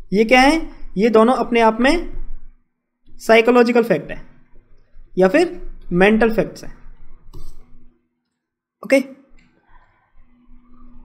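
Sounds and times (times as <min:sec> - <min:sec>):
person speaking: 0:00.0 - 0:02.2, 0:03.2 - 0:04.4, 0:05.1 - 0:07.9, 0:08.8 - 0:11.0.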